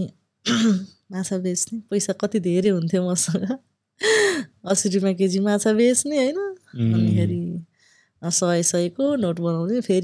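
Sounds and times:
person talking: 0:04.7 - 0:07.6.

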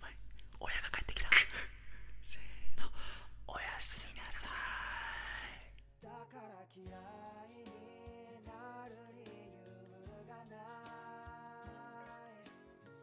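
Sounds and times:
men whispering: 0:00.0 - 0:05.8.

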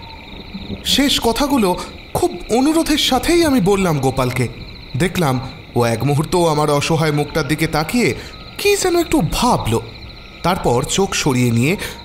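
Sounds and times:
crickets chirring: 0:00.0 - 0:12.0
person speaking: 0:00.6 - 0:12.0.

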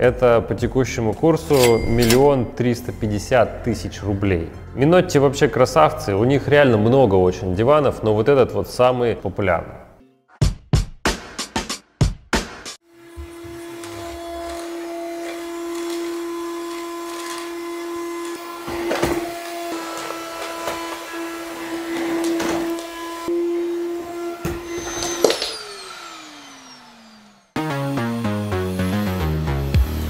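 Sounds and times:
vacuum cleaner motor whining: 0:12.9 - 0:27.6.

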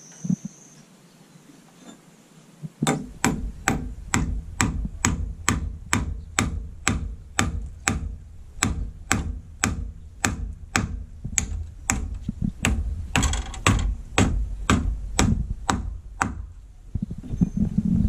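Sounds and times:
hammer striking nails into wood: 0:02.8 - 0:16.6.

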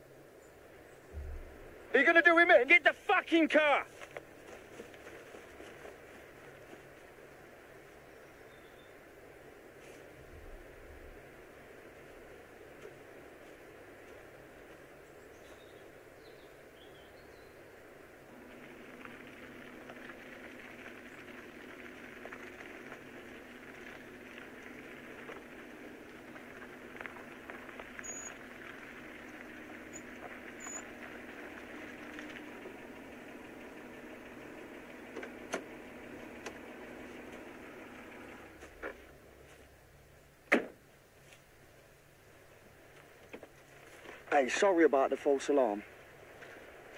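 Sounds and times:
car engine running: 0:01.0 - 0:07.9, 0:17.9 - 0:39.5, 0:45.8 - 0:46.9
faint bird chirps: 0:07.9 - 0:09.0, 0:15.0 - 0:17.6, 0:28.0 - 0:28.4, 0:29.2 - 0:30.9.

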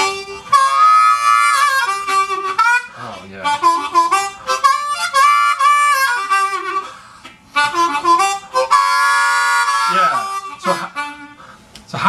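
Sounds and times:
blues harmonica playing: 0:00.0 - 0:11.7.

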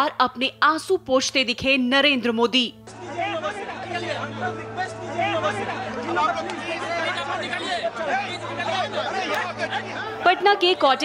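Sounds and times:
crowd talking: 0:02.8 - 0:11.0.

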